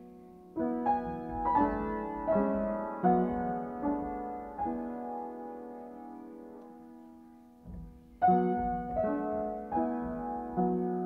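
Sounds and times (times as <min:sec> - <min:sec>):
piano music: 0:00.0 - 0:11.0.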